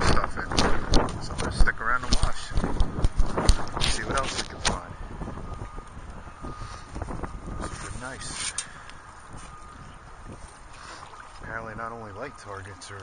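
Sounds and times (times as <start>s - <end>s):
wind on microphone: 0.0s - 12.3s
metal detector hum: 5.6s - 9.9s.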